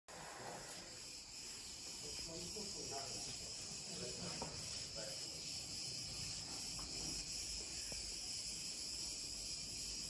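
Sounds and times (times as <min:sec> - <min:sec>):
insects chorus: 0:00.1 - 0:10.0.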